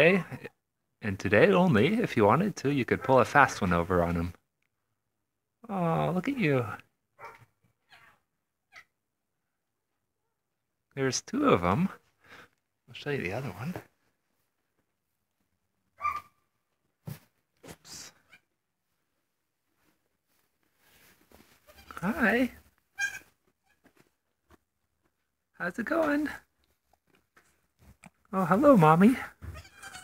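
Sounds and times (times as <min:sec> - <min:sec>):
faint rustling: 0:13.4 - 0:29.7
goat kid bleating: 0:21.6 - 0:22.1, 0:22.9 - 0:23.9, 0:29.4 - 0:30.0.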